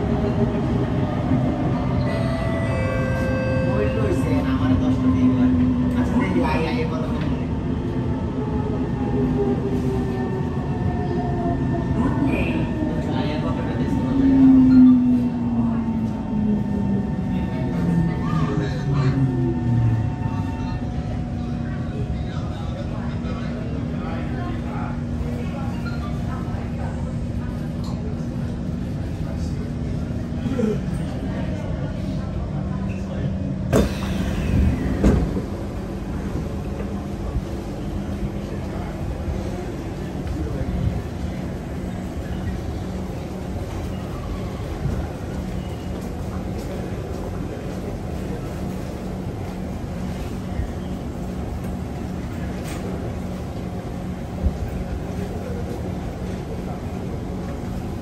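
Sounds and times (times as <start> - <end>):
train wheels rumbling on track: 0.0 - 58.0
train doors clunking: 33.7 - 37.0.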